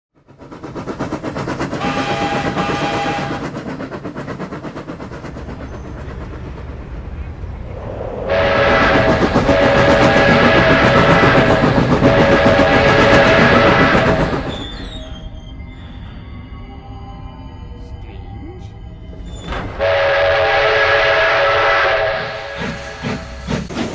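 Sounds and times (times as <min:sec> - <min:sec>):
steam locomotive running: 0:00.1 - 0:23.9
short train whistle blast: 0:01.8 - 0:03.4, 0:08.3 - 0:15.3, 0:19.8 - 0:23.2.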